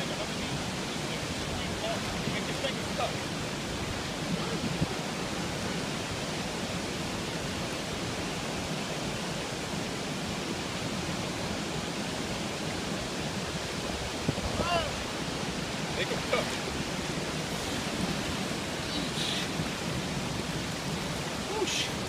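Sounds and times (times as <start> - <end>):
water rushing through spillway: 0.0 - 22.0.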